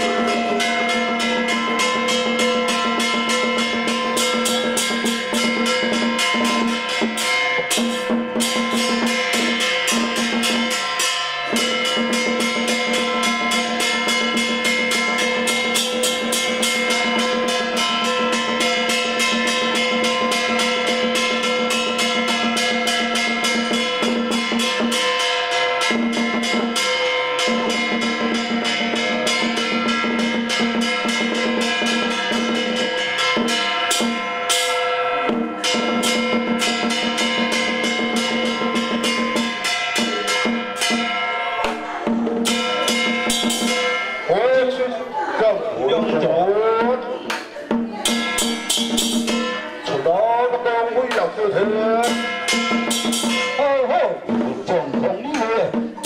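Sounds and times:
steady held pitched tone: 0.0 - 5.8
drum gongs and cymbals struck rapidly: 0.0 - 44.9, 45.8 - 56.0.

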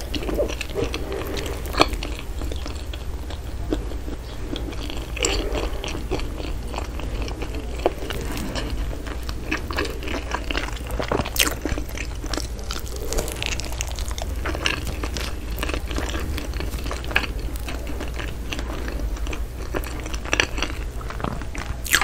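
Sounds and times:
chewing with crunches: 0.0 - 22.0.

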